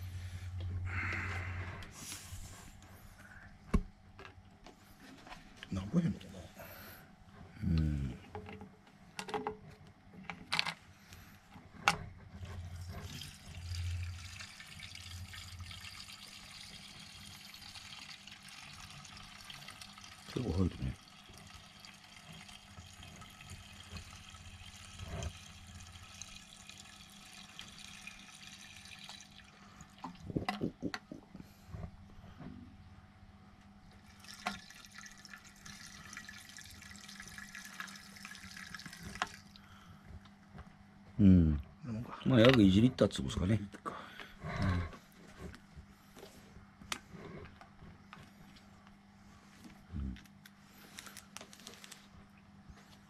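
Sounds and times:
fuel pouring into plastic tank: 12.5s - 30.5s, 34.0s - 39.8s.

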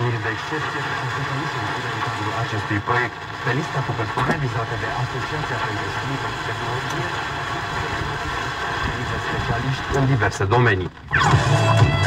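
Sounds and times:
newsreader's voice under noise: 0.0s - 11.0s
radio static hiss: 0.0s - 12.0s.

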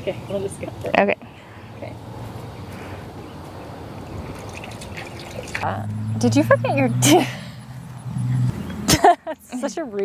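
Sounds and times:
water trickling and splashing: 3.9s - 5.7s.

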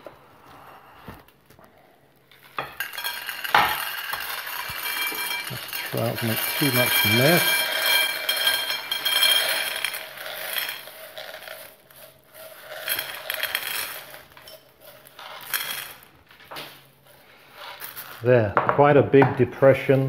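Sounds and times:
dried chickpeas pouring and rattling: 2.5s - 18.5s.

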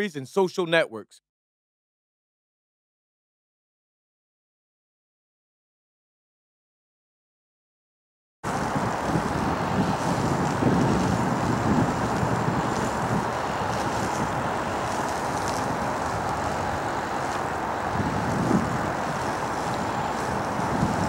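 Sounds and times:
wind rumble on microphone: 8.4s - 21.0s
low outdoor background noise: 8.5s - 21.0s.

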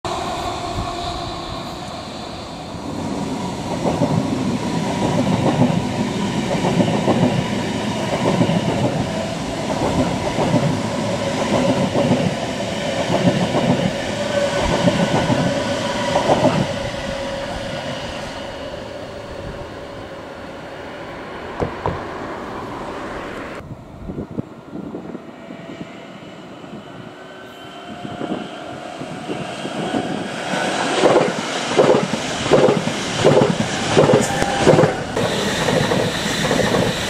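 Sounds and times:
train wheels clattering over rail joints: 30.9s - 37.0s.

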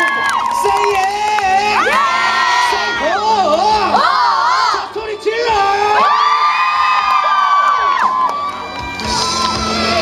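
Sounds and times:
backing track music: 0.0s - 10.0s
crowd cheering and screaming: 0.0s - 10.0s.

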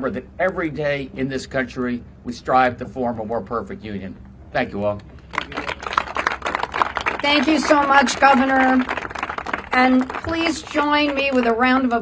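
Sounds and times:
small crowd applauding: 5.3s - 12.0s.

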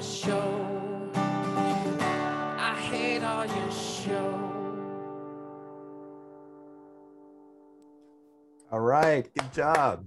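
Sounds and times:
man singing: 0.0s - 5.0s
acoustic guitar strummed: 0.0s - 8.3s.

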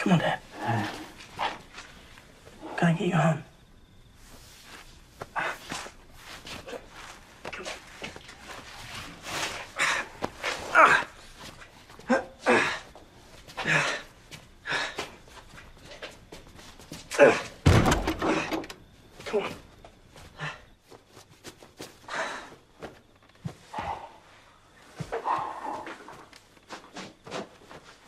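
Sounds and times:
man grunting and breathing heavily: 12.0s - 15.2s, 25.1s - 26.1s
bumps and knocks: 17.6s - 18.8s.

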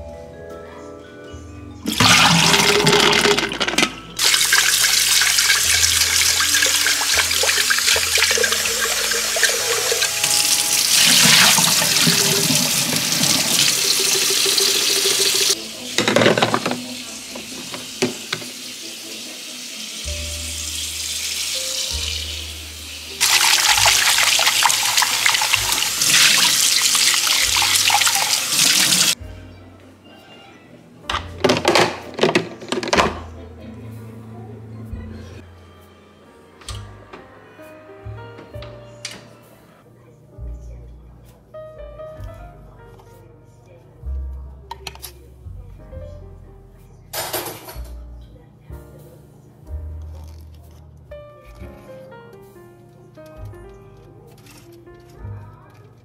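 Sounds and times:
tap water splashing into sink: 1.9s - 18.6s, 23.2s - 29.2s.

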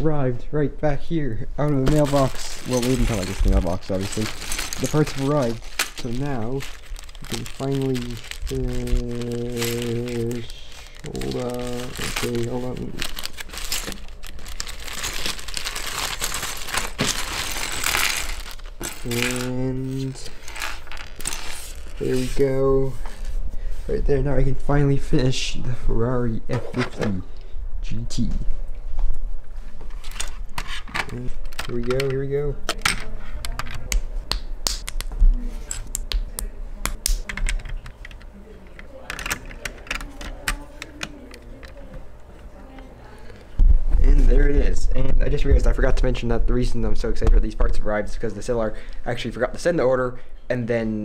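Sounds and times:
low rumble of handling: 1.6s - 23.4s
plastic pieces clicking and rattling: 1.8s - 19.6s, 39.0s - 41.8s.

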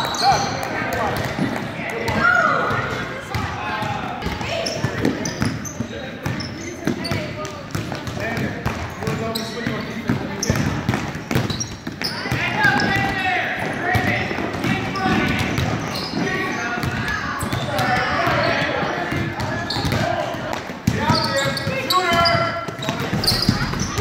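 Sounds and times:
shouts and chatter: 0.0s - 5.3s.

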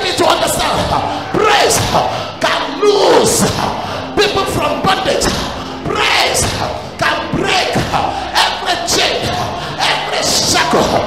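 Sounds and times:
man preaching through microphone: 0.0s - 11.0s
thuds: 0.6s - 2.1s, 3.2s - 8.1s.

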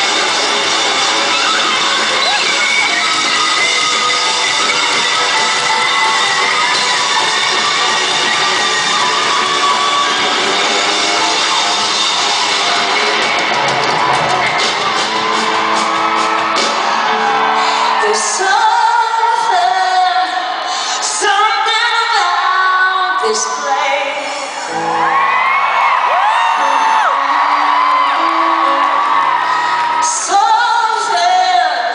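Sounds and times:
live rock band with electric guitar: 0.0s - 22.5s, 23.4s - 31.9s
audience shouting and singing along: 0.0s - 31.9s
person singing: 17.1s - 25.1s
piano chords: 26.6s - 30.4s.

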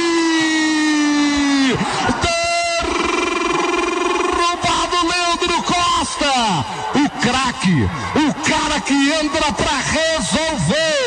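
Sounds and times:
commentator's long held shout: 0.0s - 11.0s.

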